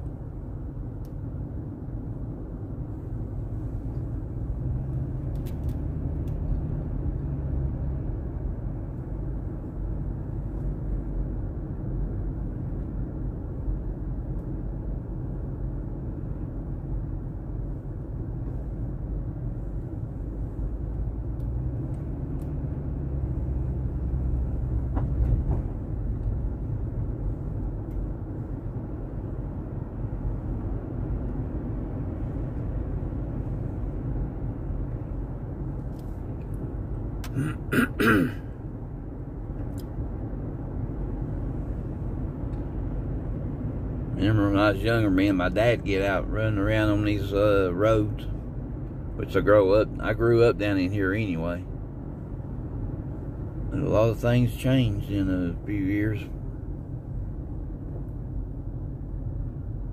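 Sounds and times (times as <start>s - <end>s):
car cabin road rumble: 0.0s - 59.9s.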